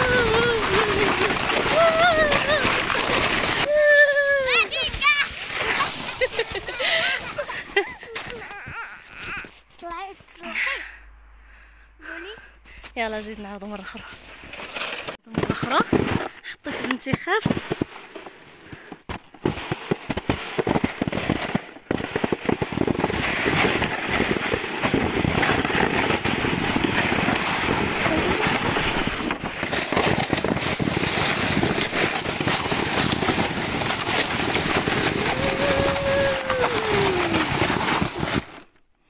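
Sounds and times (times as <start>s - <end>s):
excited high voices: 0.0s - 2.9s, 3.6s - 6.0s, 35.0s - 37.6s
plastic sled scraping over snow: 0.0s - 10.8s, 13.0s - 38.8s.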